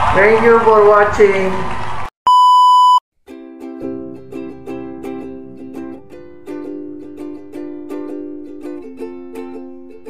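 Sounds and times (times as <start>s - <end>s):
electronic beep: 2.3s - 3.0s
music with plucked strings: 3.3s - 10.0s.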